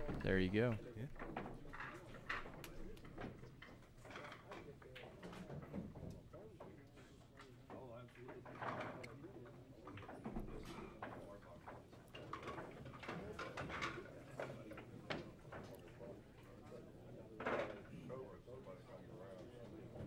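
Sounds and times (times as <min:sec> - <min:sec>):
people talking in a bar: 0:00.0 - 0:20.0.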